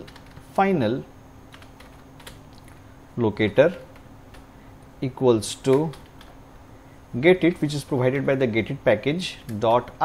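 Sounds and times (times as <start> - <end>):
computer keyboard typing: 0.0 - 0.4, 1.5 - 2.4, 5.7 - 6.4.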